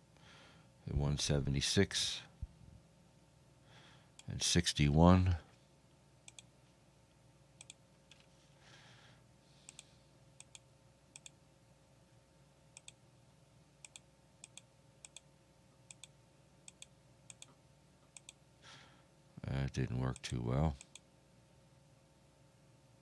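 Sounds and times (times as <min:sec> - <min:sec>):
faint steady hum: 0:00.0 - 0:23.0
computer mouse clicks: 0:06.3 - 0:06.5, 0:07.6 - 0:08.2, 0:09.7 - 0:10.6, 0:11.2 - 0:11.4, 0:12.8 - 0:13.0, 0:13.8 - 0:15.2, 0:15.9 - 0:18.4.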